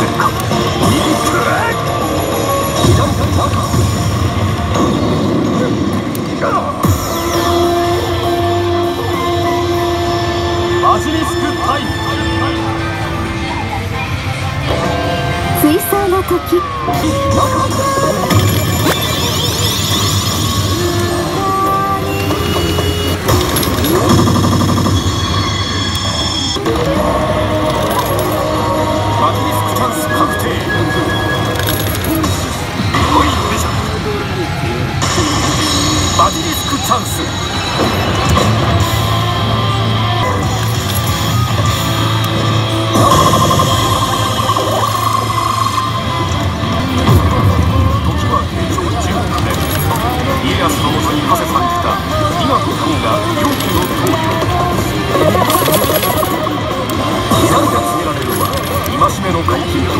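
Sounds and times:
slot machine effect sounds: 0.0s - 8.2s, 16.6s - 59.9s.

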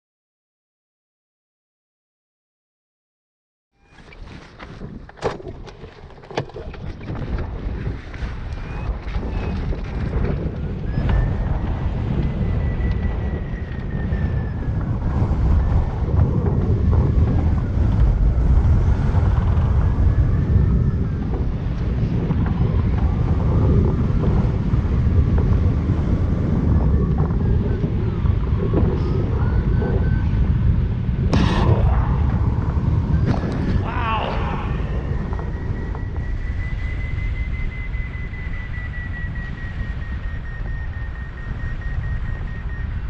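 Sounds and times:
wind rushing over microphone: 3.8s - 43.0s.

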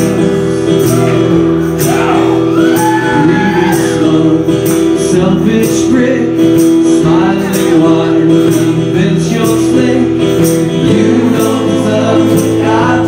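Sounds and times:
keyboard playing: 0.0s - 13.0s
man singing: 0.0s - 13.0s
strummed acoustic guitars: 0.0s - 13.0s.

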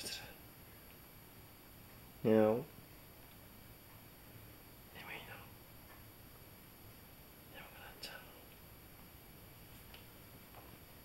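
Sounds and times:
person whispering: 4.9s - 5.5s, 7.5s - 8.6s.

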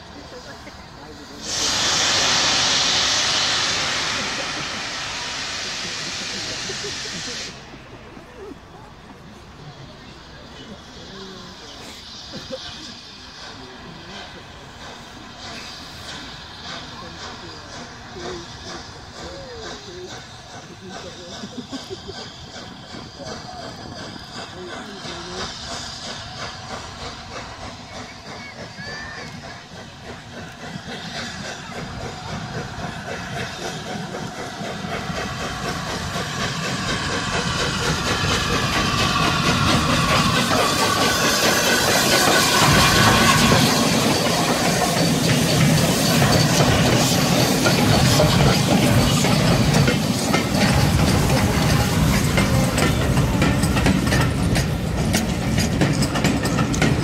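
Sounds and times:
steam hissing: 0.0s - 57.0s
steam locomotive exhaust beats: 0.0s - 57.0s.

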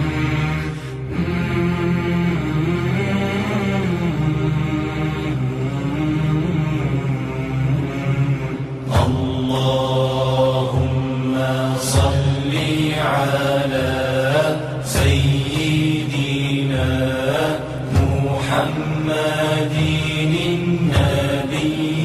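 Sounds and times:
low drone: 0.0s - 22.0s.

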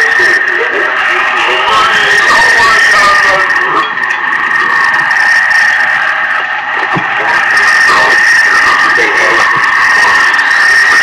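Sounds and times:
steady high tone: 0.0s - 11.0s.

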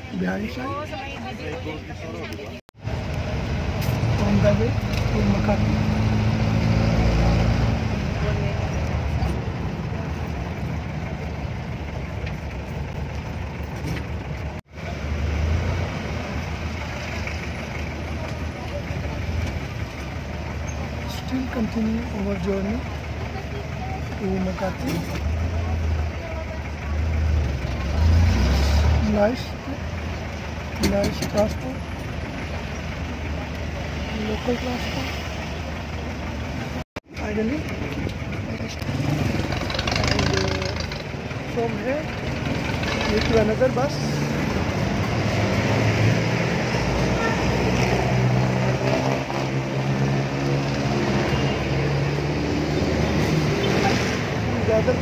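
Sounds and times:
diesel engine drone: 0.0s - 55.0s
traffic noise: 0.0s - 55.0s.

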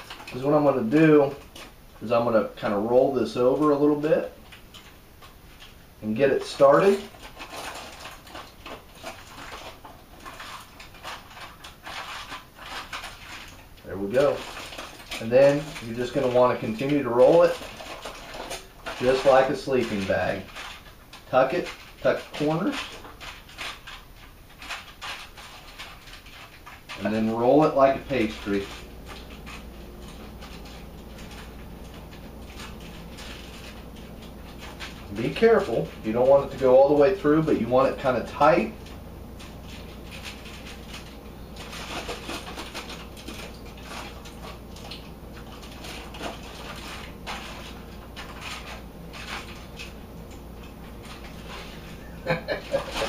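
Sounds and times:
aluminium foil crinkling: 0.0s - 53.0s.

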